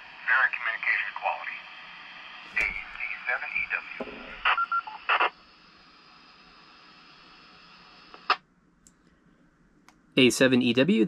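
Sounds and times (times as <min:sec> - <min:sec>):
radio static hiss: 0:00.0 - 0:08.4
radio squelch click: 0:03.7 - 0:05.3, 0:08.1 - 0:09.0.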